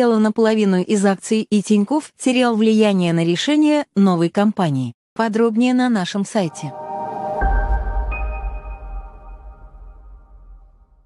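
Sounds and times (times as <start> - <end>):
electronic music sting: 6.5 - 11.0.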